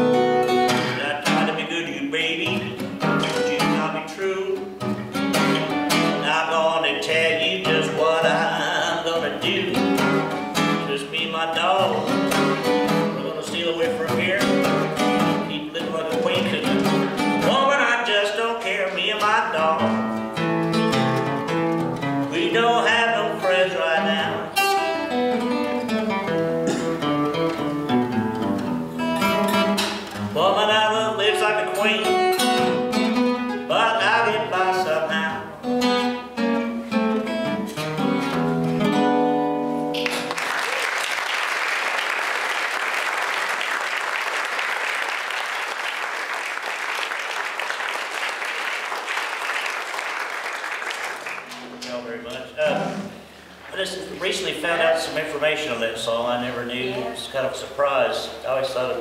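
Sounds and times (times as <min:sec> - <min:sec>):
acoustic fingerstyle guitar: 0:00.0 - 0:40.4, 0:51.4 - 0:57.5
audience applauding: 0:40.0 - 0:51.7.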